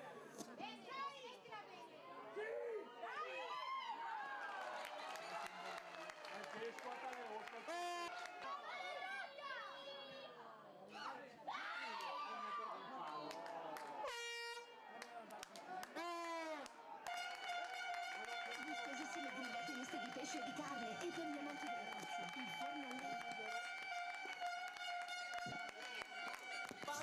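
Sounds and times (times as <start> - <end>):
air horn blasts: 7.7 - 8.2, 14.0 - 14.8, 16.0 - 27.0.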